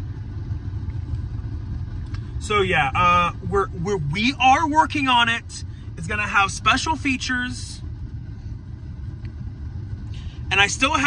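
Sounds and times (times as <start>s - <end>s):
car engine rumble inside cabin: 0.0s - 11.0s.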